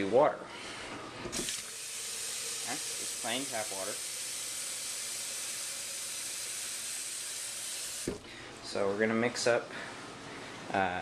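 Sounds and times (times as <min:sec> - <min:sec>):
tap water filling plastic pitcher: 0:01.3 - 0:08.2.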